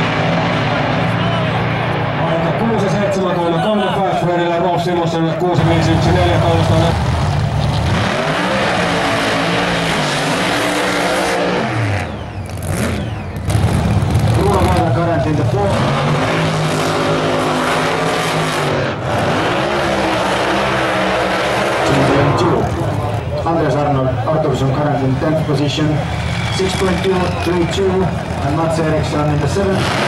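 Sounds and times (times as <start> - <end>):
drag racing engines revving: 0.0 - 30.0.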